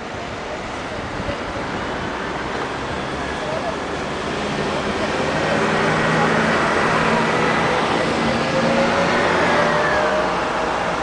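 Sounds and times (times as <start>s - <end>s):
motor vehicles passing: 0.5s - 11.0s.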